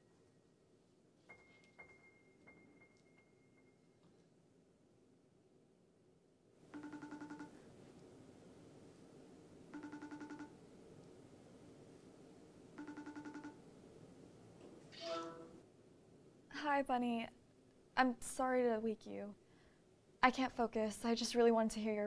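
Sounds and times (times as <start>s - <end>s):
fluttering phone ringback tone: 6.8s - 7.5s, 9.8s - 10.5s, 12.8s - 13.6s.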